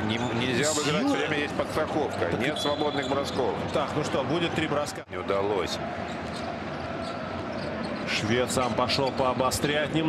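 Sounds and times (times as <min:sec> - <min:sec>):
arena crowd murmur: 0:00.0 - 0:10.0.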